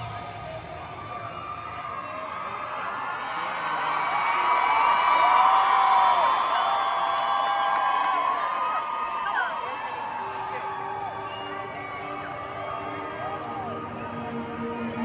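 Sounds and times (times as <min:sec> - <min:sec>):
crowd cheering: 0:00.0 - 0:15.0
fans whooping and screaming: 0:00.0 - 0:15.0.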